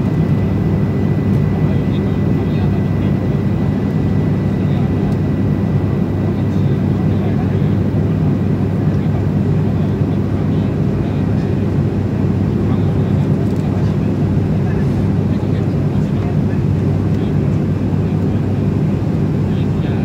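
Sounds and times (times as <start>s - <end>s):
propeller engine drone: 0.0s - 20.0s.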